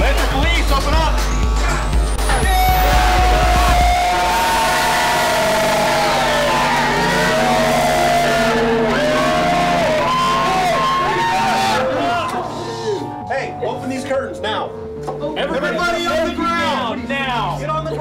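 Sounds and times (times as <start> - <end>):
heavy bass with rising sweep: 0.4 - 14.0
melodic line of held notes: 1.3 - 18.0.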